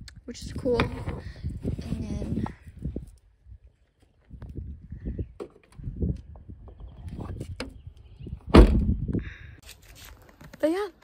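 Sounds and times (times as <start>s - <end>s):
car trunk lid slamming shut: 8.5s - 8.9s.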